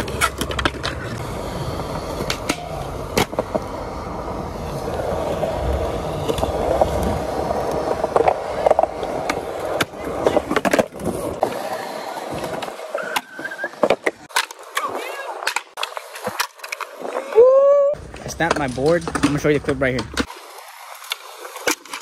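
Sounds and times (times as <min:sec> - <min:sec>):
skateboard clacks: 0:00.0 - 0:01.3, 0:01.9 - 0:03.8, 0:18.1 - 0:22.0
skateboard wheels rolling on concrete: 0:00.0 - 0:22.0.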